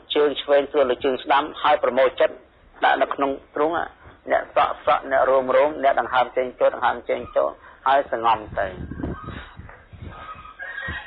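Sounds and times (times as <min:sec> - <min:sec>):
drawn-out animal cries: 0:08.9 - 0:11.0.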